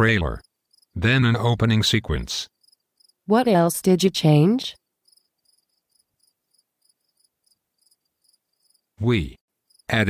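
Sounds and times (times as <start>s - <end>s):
cricket chirping: 0.2s - 1.1s, 2.4s - 3.2s, 4.8s - 9.0s, 9.6s - 10.0s.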